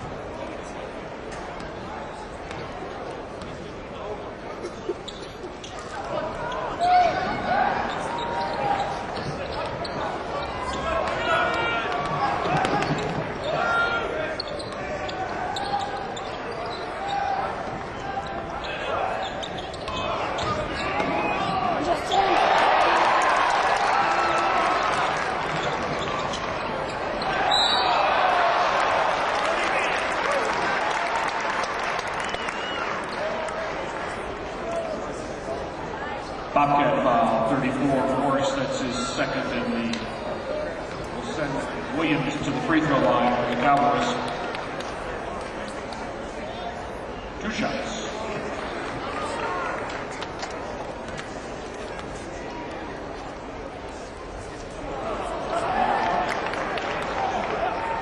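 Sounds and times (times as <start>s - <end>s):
crowd noise and voices: 0.0s - 58.0s.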